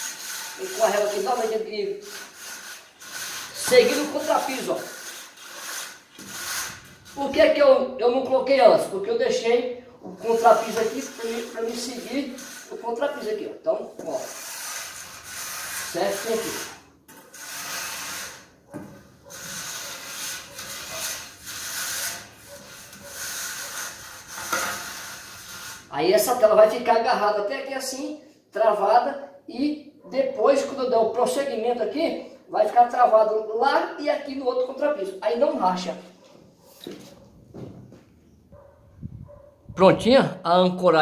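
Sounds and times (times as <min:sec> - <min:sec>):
straightedge scraping wet mortar: 0:00.0 - 0:07.6, 0:10.1 - 0:26.5.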